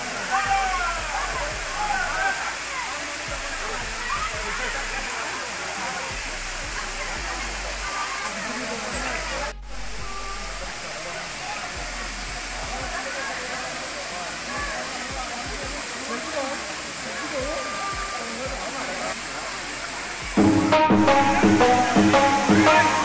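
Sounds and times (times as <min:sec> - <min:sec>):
crowd chattering: 0:00.0 - 0:23.0
waterfall rushing: 0:00.0 - 0:23.0.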